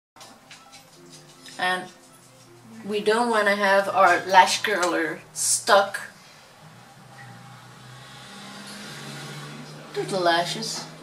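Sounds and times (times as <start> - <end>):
steady low hum: 0.3 - 11.0
sustained low tones: 2.6 - 11.0.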